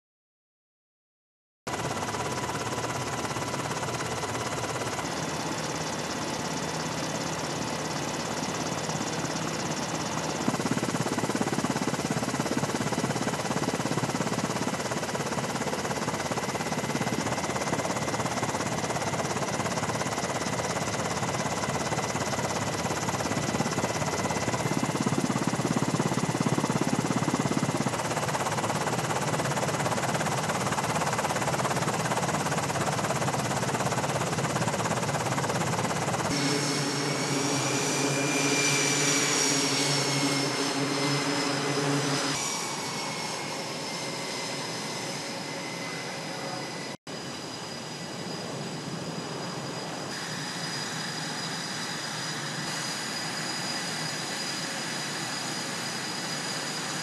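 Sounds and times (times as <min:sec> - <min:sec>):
aircraft engine roar with whine: 0:01.7 - 0:57.0
engine whining tones: 0:36.3 - 0:47.0.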